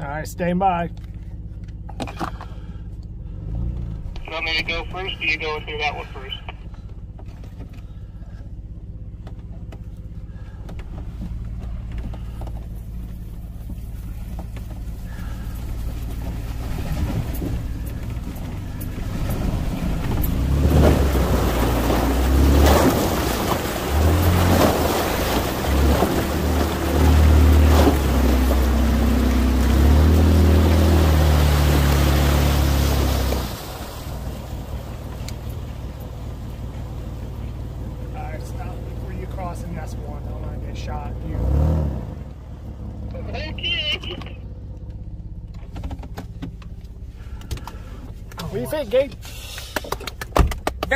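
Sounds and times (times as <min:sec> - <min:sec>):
jeep engine revving: 0:00.0 - 0:50.9
water splashing: 0:11.4 - 0:41.7.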